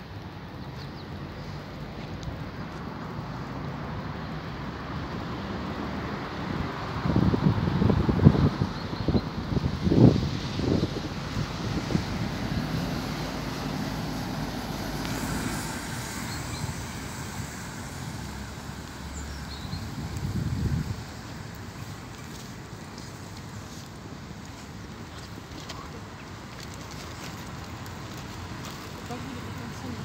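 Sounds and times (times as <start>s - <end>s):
road traffic hum: 0.0s - 30.0s
wind buffeting microphone: 6.4s - 14.6s, 16.0s - 23.6s.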